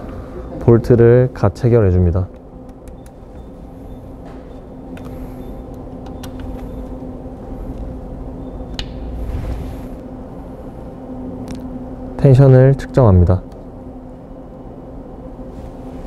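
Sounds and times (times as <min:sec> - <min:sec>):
workshop machinery hum: 0:00.0 - 0:16.0.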